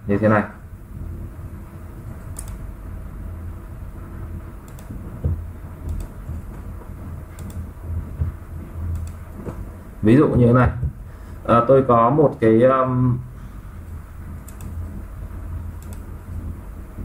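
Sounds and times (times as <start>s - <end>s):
low background rumble: 0.0s - 17.0s
computer mouse clicks: 2.2s - 2.6s, 4.7s - 5.0s, 5.8s - 6.2s, 7.4s - 7.7s, 8.9s - 9.2s, 14.4s - 14.8s, 15.8s - 16.1s.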